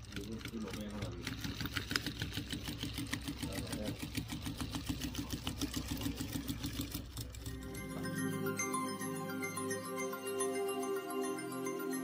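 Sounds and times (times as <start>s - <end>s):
sewing machine stitching: 0.0s - 7.5s.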